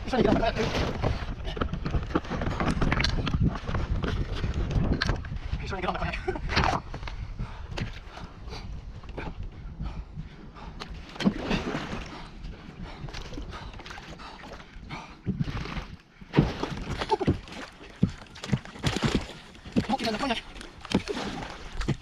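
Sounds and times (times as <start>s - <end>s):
water splashing against kayak hull: 10.9s - 22.0s.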